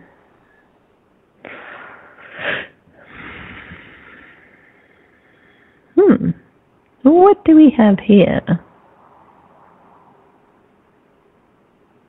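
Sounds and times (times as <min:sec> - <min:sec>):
loud sniff: 0:01.4 - 0:05.8
woman breathing through nose: 0:01.4 - 0:06.0.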